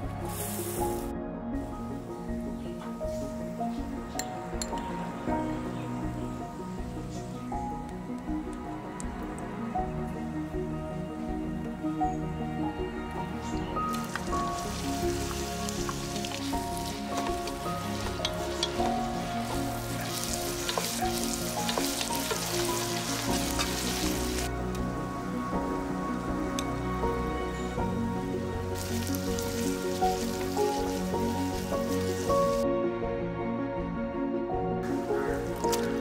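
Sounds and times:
background music: 0:00.0 - 0:36.0
onions sizzling in hot oil: 0:00.2 - 0:01.8, 0:13.9 - 0:32.6, 0:34.9 - 0:36.0
wooden spatula stirring: 0:14.0 - 0:24.5, 0:28.7 - 0:32.6.

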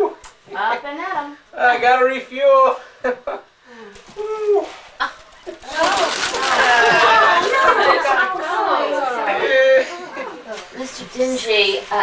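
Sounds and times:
indistinct chatter of voices: 0:04.0 - 0:12.0.

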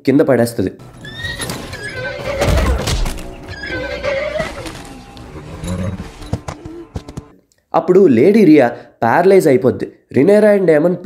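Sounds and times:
horse neighing: 0:00.8 - 0:07.1
film score music: 0:00.8 - 0:07.4.

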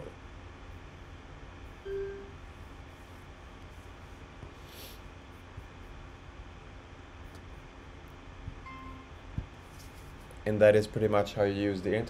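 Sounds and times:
low hum: 0:00.0 - 0:10.3
short electronic beep: 0:01.9 - 0:02.4, 0:08.7 - 0:09.1.

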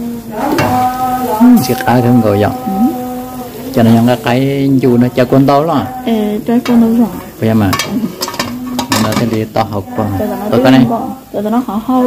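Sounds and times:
person chanting long notes: 0:00.0 - 0:06.4
pot boiling and bubbling: 0:00.0 - 0:12.0
metal pot lid lifted: 0:07.7 - 0:09.5.

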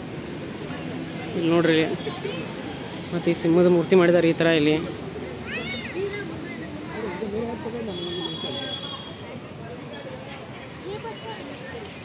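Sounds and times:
people talking: 0:05.5 - 0:12.0.

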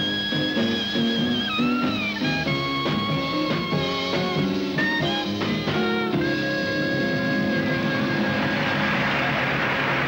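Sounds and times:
band holding low notes: 0:00.0 - 0:10.0
audience applauding: 0:07.6 - 0:10.0.

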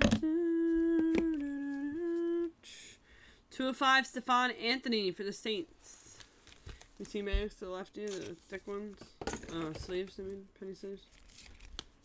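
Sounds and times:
person humming a held note: 0:00.0 - 0:02.9.

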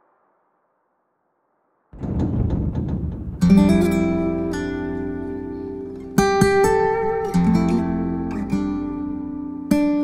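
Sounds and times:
heavy wooden door opening: 0:02.0 - 0:06.2.

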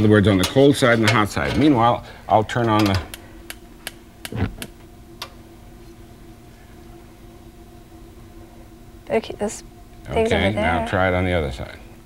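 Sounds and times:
faint steady hum: 0:00.0 - 0:12.0
gas igniter ticking: 0:02.6 - 0:05.4.

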